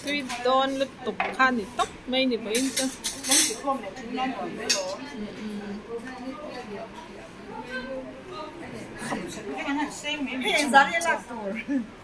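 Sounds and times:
background talk: 0:00.0 - 0:12.0
metal plates and spoons clattering: 0:02.5 - 0:03.7, 0:04.7 - 0:05.0.

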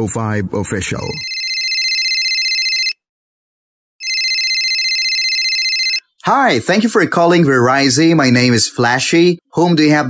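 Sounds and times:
telephone ringing: 0:01.2 - 0:03.0, 0:04.0 - 0:06.1.

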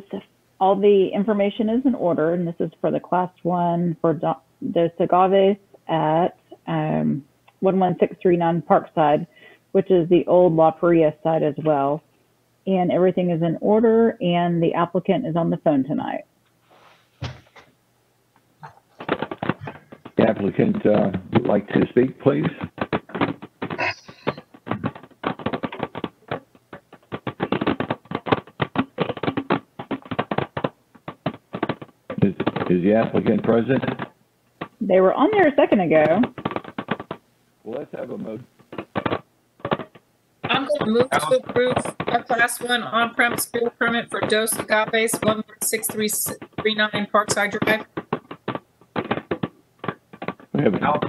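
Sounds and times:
audio line crackling: 0:00.0 - 0:51.0.

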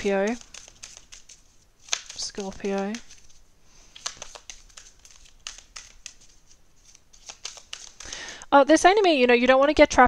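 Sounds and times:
cards being shuffled: 0:00.0 - 0:08.4.

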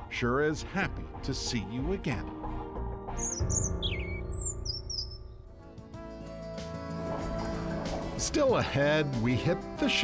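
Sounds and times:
background music: 0:00.0 - 0:10.0
songbird chirping: 0:02.9 - 0:05.7.

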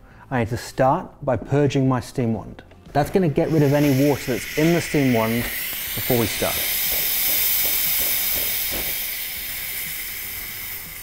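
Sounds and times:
steam wand hissing: 0:03.3 - 0:11.0.

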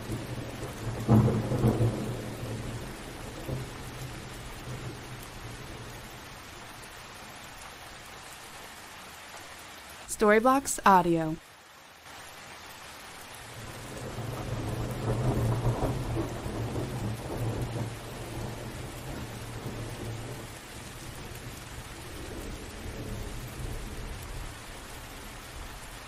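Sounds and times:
thunder rumble: 0:00.0 - 0:06.1, 0:13.6 - 0:24.5
steady rain: 0:00.0 - 0:26.0.

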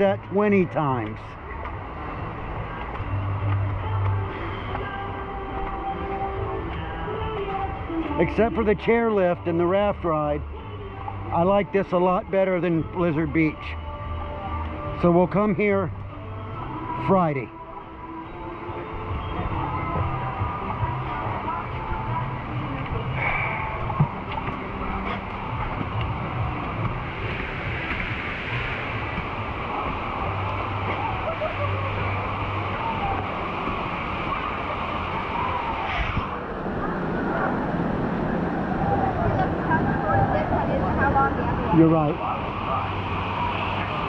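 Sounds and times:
background voices: 0:00.0 - 0:44.0
rushing water: 0:00.0 - 0:44.0.

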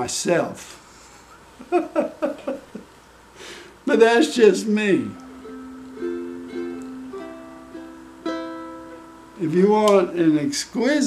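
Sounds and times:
ukulele chords fingerpicked: 0:05.0 - 0:10.1.

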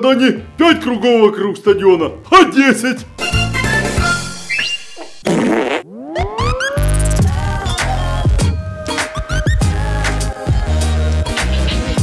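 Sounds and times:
upbeat outro music: 0:03.1 - 0:04.6
comic fart sound effect: 0:04.6 - 0:07.2
rising sweep: 0:05.8 - 0:08.4.

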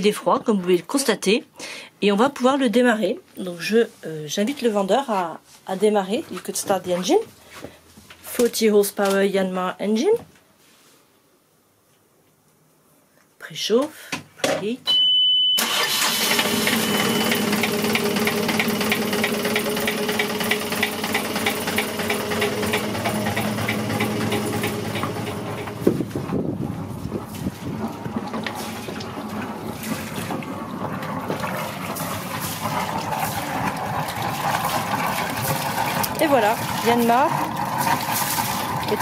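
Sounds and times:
high steady beep: 0:14.9 - 0:15.7
diesel engine starting and idling: 0:15.6 - 0:39.0.

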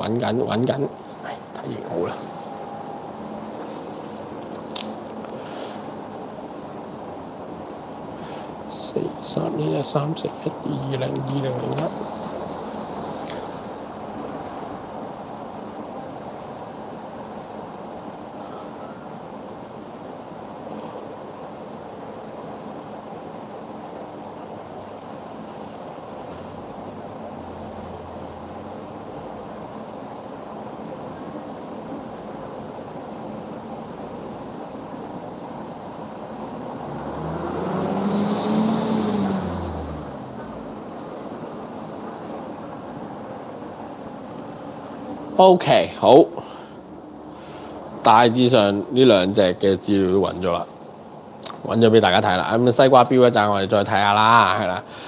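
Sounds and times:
room noise: 0:00.0 - 0:54.9
traffic hum: 0:00.0 - 0:55.0
vehicle passing by: 0:36.4 - 0:40.9.

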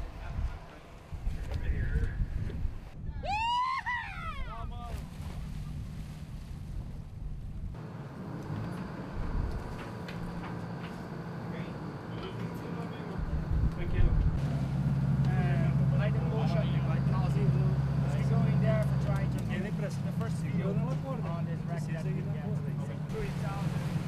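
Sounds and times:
boat engine droning: 0:04.5 - 0:24.0
people talking: 0:11.5 - 0:14.2, 0:15.2 - 0:23.8.

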